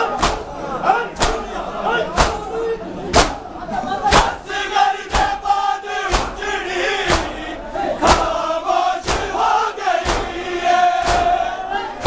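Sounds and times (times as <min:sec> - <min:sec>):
hands beating chests: 0:00.2 - 0:00.5, 0:02.2 - 0:02.5, 0:03.1 - 0:03.4, 0:05.1 - 0:05.4, 0:06.1 - 0:06.5, 0:07.1 - 0:07.4, 0:08.1 - 0:08.4, 0:09.0 - 0:09.4, 0:10.0 - 0:10.4, 0:11.0 - 0:11.4
men chanting in unison: 0:04.1 - 0:12.0.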